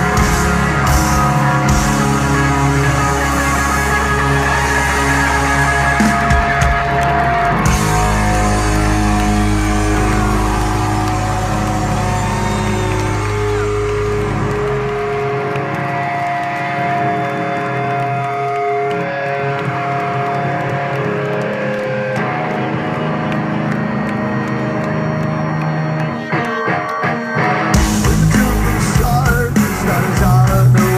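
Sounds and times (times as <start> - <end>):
deep bass: 0.0 - 15.2, 27.8 - 30.9
electric guitars sustained notes: 0.0 - 30.9.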